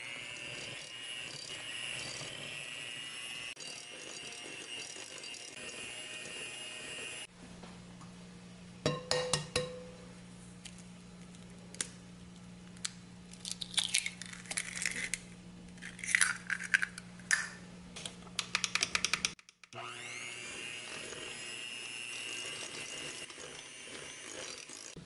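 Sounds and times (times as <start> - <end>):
electric hand mixer whine: 0.0 - 7.3, 19.8 - 25.0.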